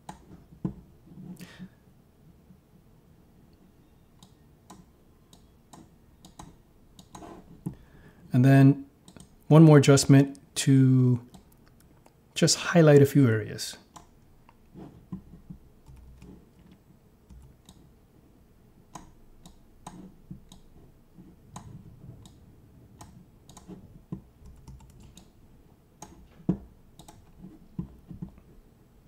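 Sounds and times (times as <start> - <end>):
mouse and keyboard clicking: 4.2 - 7.4, 18.9 - 20.7, 23.0 - 25.3.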